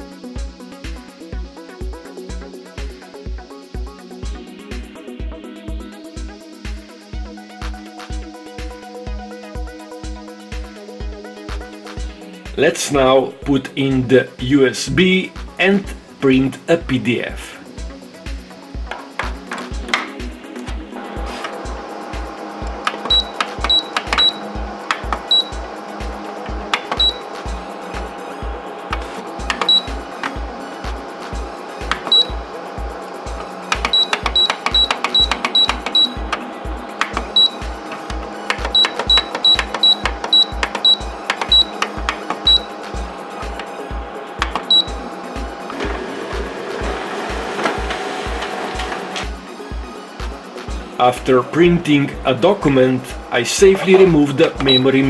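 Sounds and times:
background music with beat: 0:00.0 - 0:55.0
printer whirring: 0:17.7 - 0:55.0
printer key beeps: 0:22.8 - 0:25.7, 0:26.6 - 0:27.5, 0:29.4 - 0:30.4, 0:31.8 - 0:32.4, 0:33.7 - 0:43.7, 0:44.4 - 0:45.0, 0:53.7 - 0:55.0.

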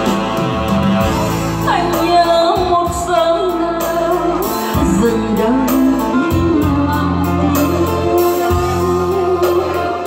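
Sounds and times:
electronic keyboard: 0:00.0 - 0:10.0
woman singing into microphone: 0:01.6 - 0:10.0.

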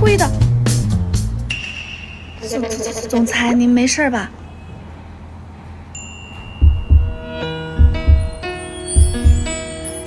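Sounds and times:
soft high chime: 0:06.0 - 0:10.0
deep heartbeat-like thumps: 0:06.6 - 0:07.2, 0:07.8 - 0:08.4, 0:09.0 - 0:09.5.

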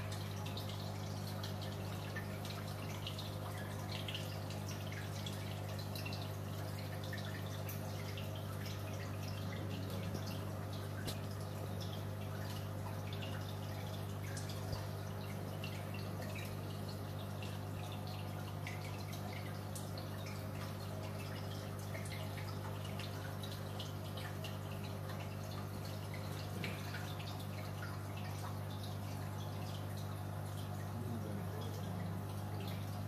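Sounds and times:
aquarium equipment hum: 0:00.0 - 0:33.0
water dripping and bubbling: 0:00.0 - 0:33.0.

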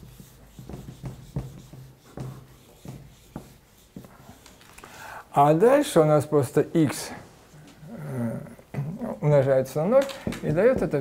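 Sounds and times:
man murmuring: 0:07.8 - 0:09.4.

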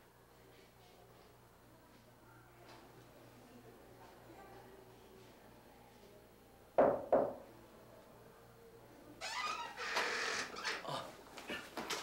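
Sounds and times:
knocks on a door: 0:06.8 - 0:07.4
door squeaking open: 0:09.2 - 0:10.9.

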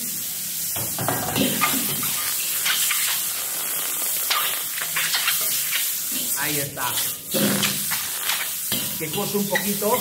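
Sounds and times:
shellfish sizzling in a wok: 0:00.0 - 0:10.0
utensils scraping a wok: 0:01.4 - 0:10.0.

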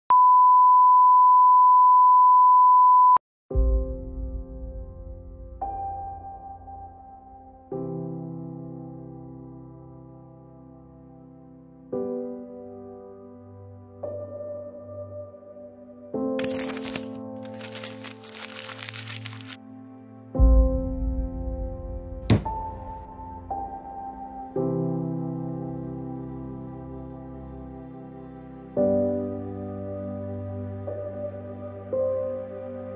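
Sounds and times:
steady test tone beep: 0:00.1 - 0:03.2
background music: 0:03.5 - 0:32.9
paper being crumpled: 0:16.4 - 0:19.6
soft ambient music with drone: 0:22.9 - 0:32.9.

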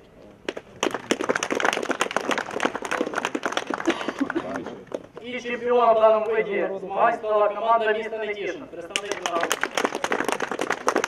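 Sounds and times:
group of people applauding: 0:00.5 - 0:05.2, 0:08.9 - 0:11.0.

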